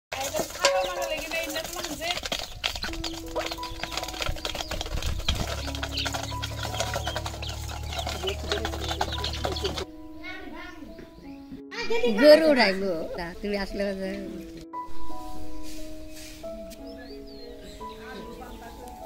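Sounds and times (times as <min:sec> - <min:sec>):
bills pecking metal bowl: 0:00.1 - 0:09.9
background music with held notes: 0:00.2 - 0:19.0
chicks peeping: 0:00.3 - 0:09.9, 0:16.7 - 0:19.0.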